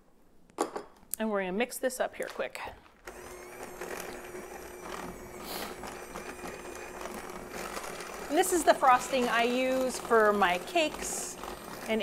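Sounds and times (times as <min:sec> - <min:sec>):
electric hand mixer running: 0:03.0 - 0:12.0.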